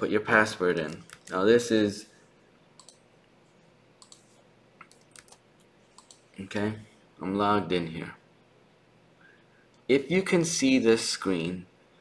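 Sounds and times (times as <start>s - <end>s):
faint keyboard keystrokes: 4.0s - 6.5s.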